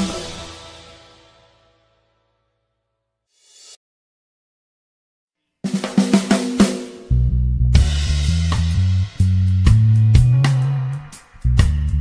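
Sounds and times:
music track: 0.0s - 2.0s, 7.1s - 12.0s
drum fill snare and kick: 5.7s - 11.9s.

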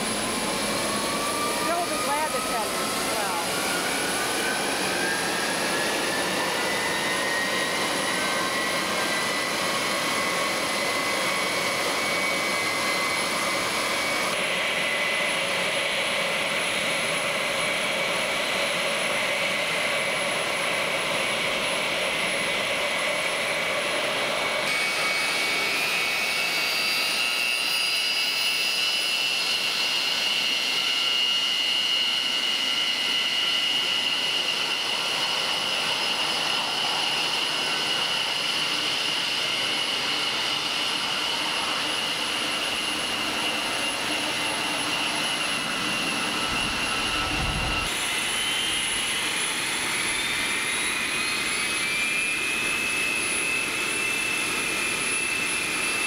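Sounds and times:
jet engines whining: 0.0s - 56.0s.

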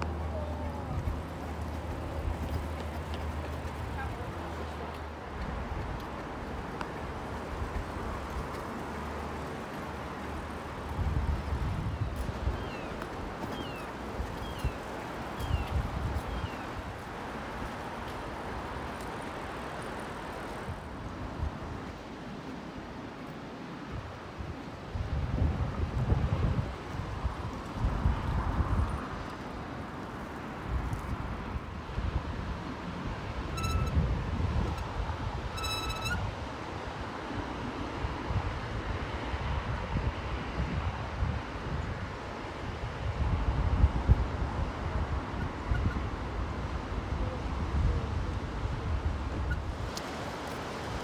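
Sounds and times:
wind buffeting microphone: 0.0s - 22.0s, 23.9s - 51.0s
short high-pitched tones: 33.6s - 34.0s.

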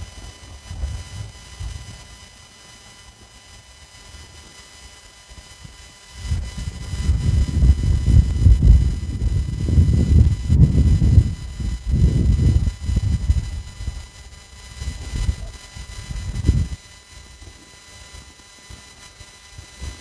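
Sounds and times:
wind buffeting microphone: 6.2s - 14.0s, 14.8s - 16.8s.

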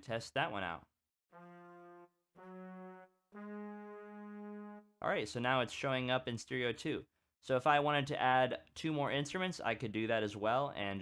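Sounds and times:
brass section held notes: 1.3s - 5.1s.

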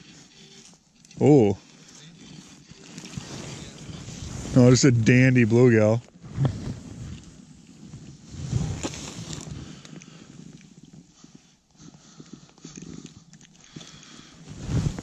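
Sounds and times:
glove and jacket rustling: 0.0s - 15.0s.

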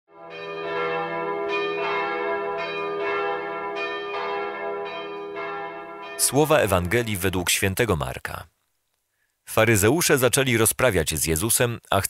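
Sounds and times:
bells ringing: 0.2s - 7.4s.

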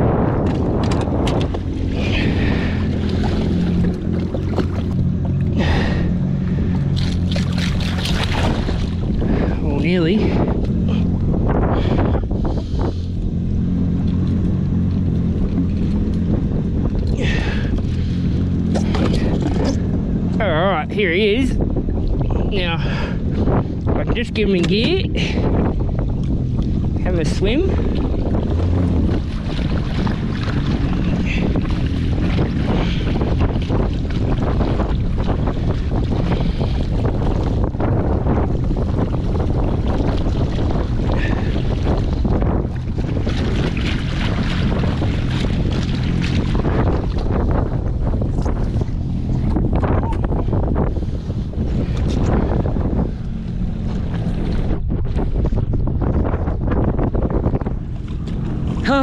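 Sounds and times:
jet ski engine running: 0.0s - 59.0s
water rushing along hull: 0.0s - 59.0s.

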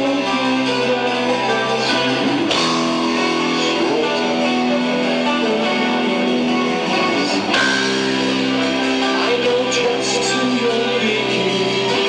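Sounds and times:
metal band playing: 0.0s - 12.0s.

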